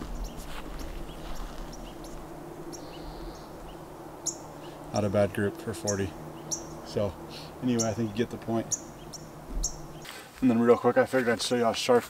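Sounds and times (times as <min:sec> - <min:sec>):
bird chirps: 0:00.0 - 0:10.1
low steady rumble: 0:00.0 - 0:10.1.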